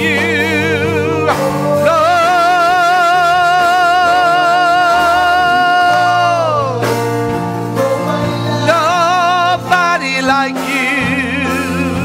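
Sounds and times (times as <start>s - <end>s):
person singing with vibrato: 0.0s - 12.0s
sustained keyboard chords: 0.0s - 12.0s.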